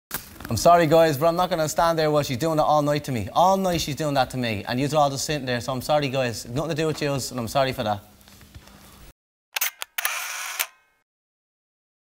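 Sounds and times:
camera shutter clicks: 9.6 - 10.9.

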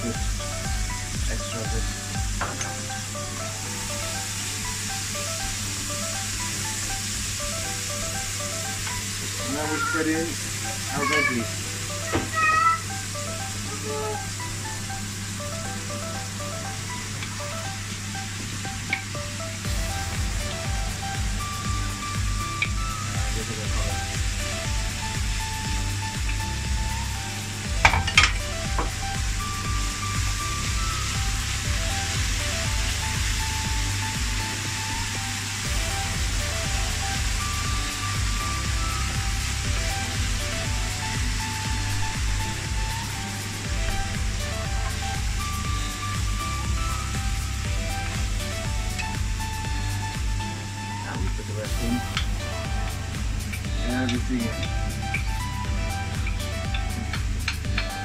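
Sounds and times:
upbeat background music: 0.0 - 58.0
vegetables sizzling in a pan: 0.0 - 58.0.

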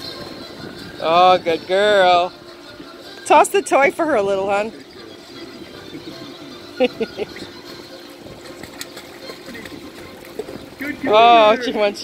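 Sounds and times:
steady rush of water: 0.0 - 12.0
water splashing: 3.3 - 12.0.

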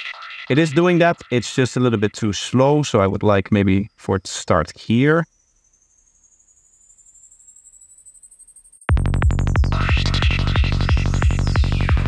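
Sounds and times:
stuttering high synth: 0.0 - 2.2
pounding kick drum: 8.9 - 12.0
rolling bass: 8.9 - 12.0.

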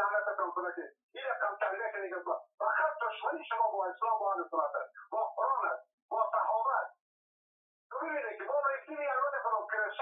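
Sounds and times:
person talking: 0.0 - 7.0, 7.9 - 10.0.

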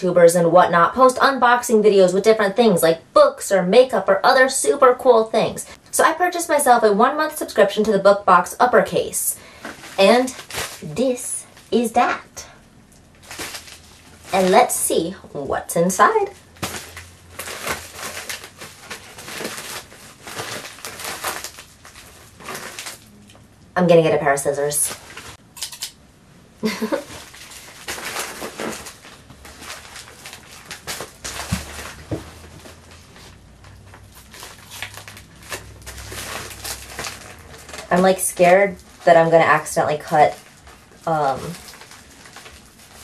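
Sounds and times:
plastic mailer bag crinkling: 9.4 - 12.1, 13.1 - 15.2, 16.0 - 23.4, 24.5 - 25.4, 26.6 - 43.0.

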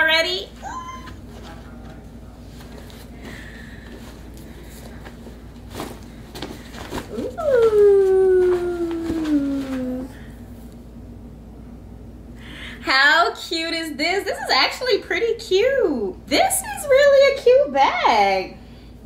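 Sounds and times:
woman's drawn-out ooh: 7.1 - 10.2.

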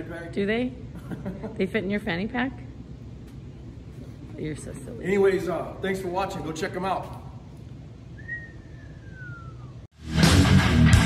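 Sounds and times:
low background noise: 0.0 - 9.9.

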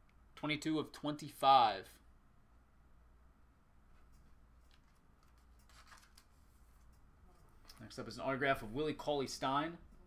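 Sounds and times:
trading cards rubbing: 4.0 - 7.7.

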